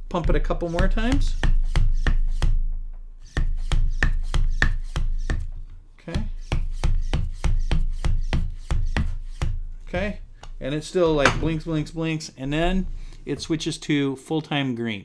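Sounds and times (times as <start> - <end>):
hand vacuum pump clicking strokes: 0.6 - 2.5.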